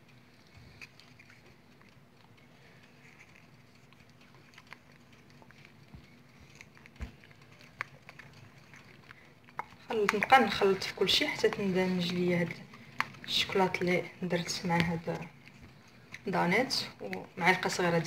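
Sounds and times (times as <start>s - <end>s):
wet stirring of chocolate: 0.0s - 18.0s.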